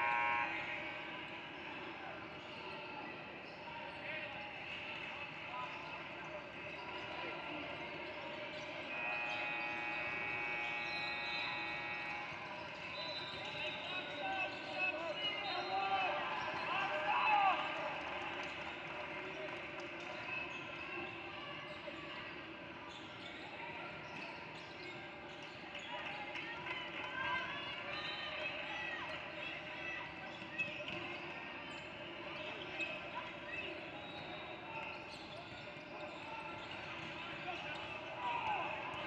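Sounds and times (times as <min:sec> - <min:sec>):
voices in echoing hall: 0:00.0 - 0:39.0.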